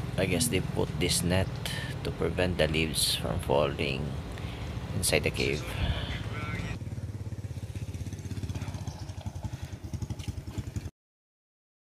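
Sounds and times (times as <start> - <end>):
small engine running: 6.8 - 10.9.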